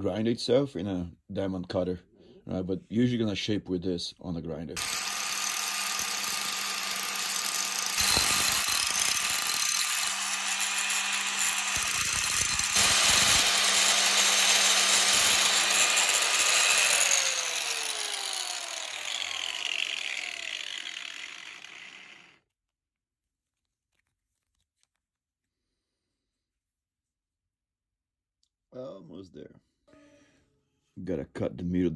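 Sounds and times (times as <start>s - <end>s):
angle grinder grinding metal: 4.8s - 22.4s.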